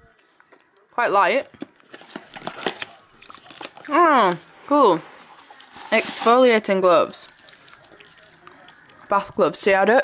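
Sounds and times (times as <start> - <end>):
packaging rustling: 1.6 - 4.5, 5.2 - 6.6.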